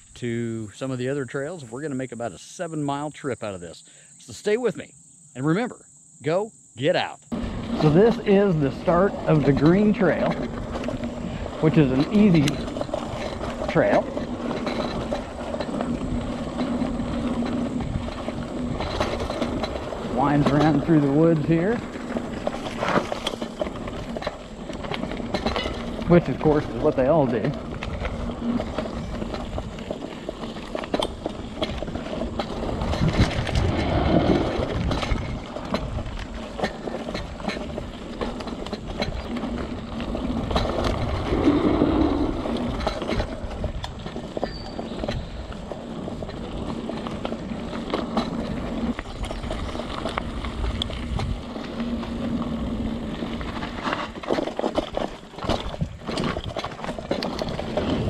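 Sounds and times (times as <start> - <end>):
bike tyres rolling over dirt: 6.9 - 58.0
bike rattling over bumps: 7.3 - 58.0.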